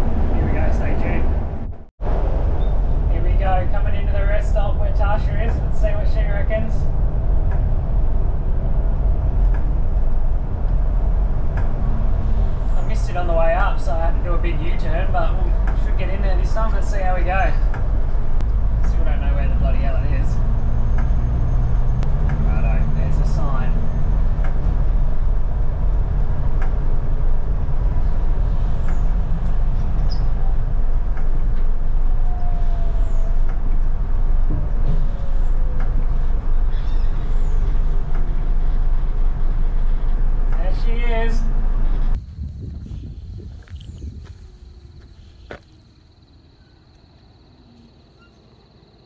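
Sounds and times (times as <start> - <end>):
bus body rattles and squeaks: 0.0 - 42.2, 48.1 - 48.5
bus engine and road rumble: 0.0 - 46.2.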